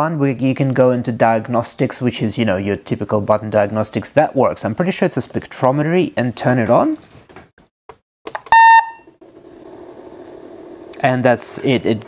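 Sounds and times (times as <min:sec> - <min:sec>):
patient monitor beep: 0:08.5 - 0:09.1.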